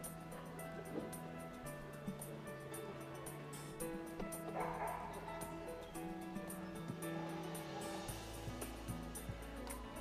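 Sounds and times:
background music with steady beat: 0.0s - 10.0s
dog barking: 4.6s - 5.2s.

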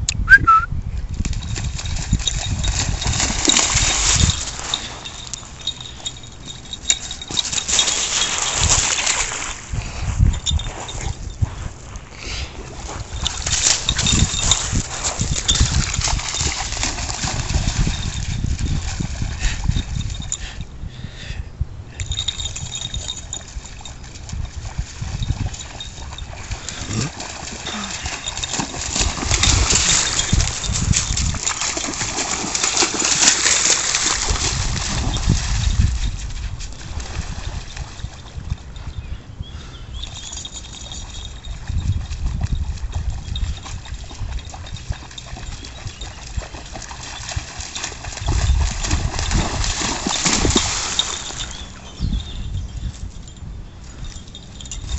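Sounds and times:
dog splashing through water: 1.2s - 10.3s, 12.6s - 19.8s, 22.7s - 38.4s, 40.6s - 51.9s.

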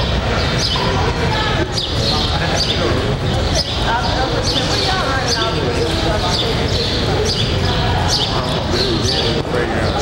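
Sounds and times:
men talking: 1.9s - 3.6s, 8.0s - 10.0s.

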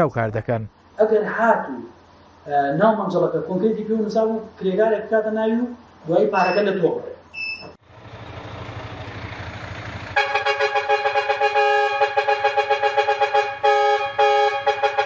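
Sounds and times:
rushing street noise: 7.8s - 15.0s
vehicle horn long blasts: 10.1s - 15.0s.

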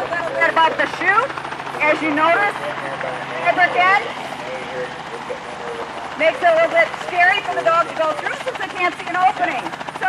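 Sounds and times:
faint voices: 0.0s - 10.0s
open-air noise: 0.0s - 10.0s
steady low hum: 0.0s - 10.0s.

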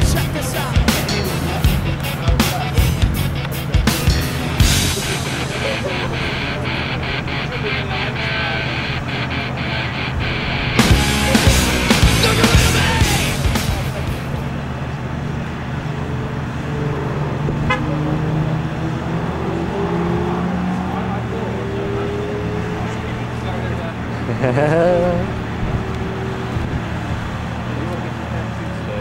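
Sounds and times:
background music: 0.0s - 14.4s
car engine idling: 0.0s - 19.2s.

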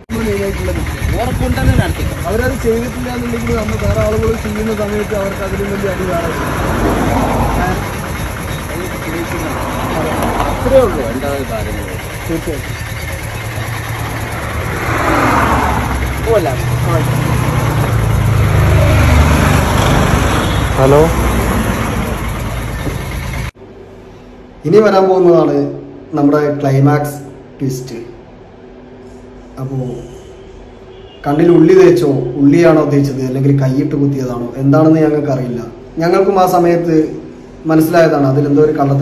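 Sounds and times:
people talking: 0.0s - 6.6s, 7.4s - 12.8s, 16.2s - 18.0s, 20.8s - 21.2s
vehicle engine running: 0.0s - 23.6s
dense roadside rumbling: 0.0s - 25.2s.

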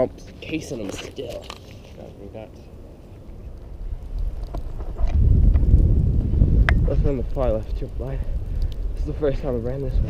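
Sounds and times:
wind buffeting microphone: 2.3s - 10.0s
faint clicks: 6.6s - 8.9s.

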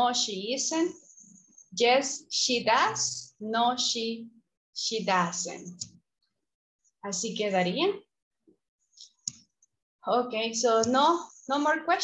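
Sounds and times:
computer mouse clicks: 9.0s - 9.8s.

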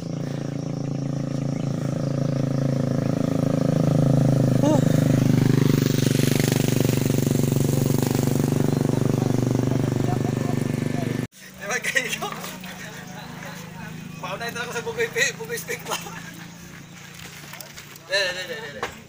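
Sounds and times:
vehicle engine running: 0.0s - 18.6s.

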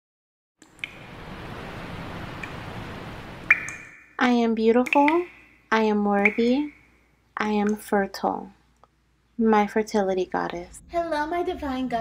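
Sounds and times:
soft rushing swell: 0.8s - 4.2s.

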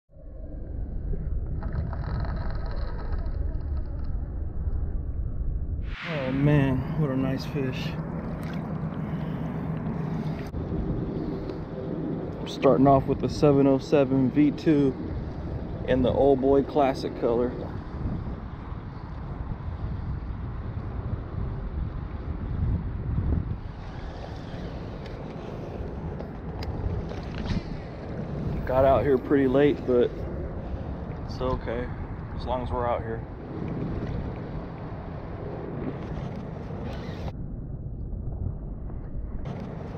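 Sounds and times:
wind rumbling on microphone: 0.1s - 39.9s
fish thrashing and splashing: 8.2s - 9.5s.

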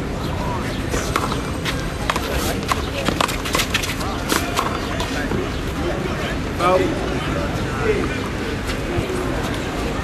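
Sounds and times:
spectator chatter: 0.0s - 10.0s.

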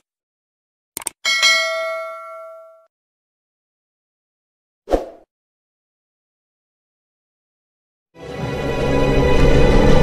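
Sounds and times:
bell chime: 1.3s - 2.9s.

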